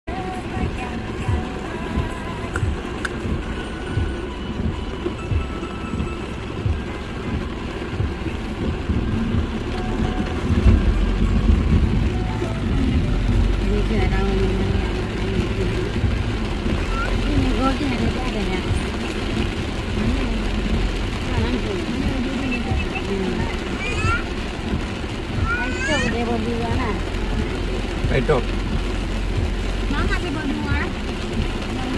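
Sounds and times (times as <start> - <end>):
car engine and road rumble: 0.0 - 31.9
heavy rain on a car: 0.0 - 31.9.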